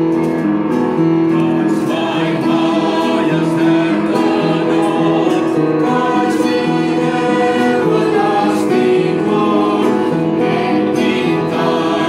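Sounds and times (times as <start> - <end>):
upright piano: 0.0 - 12.0
group singing: 1.3 - 12.0.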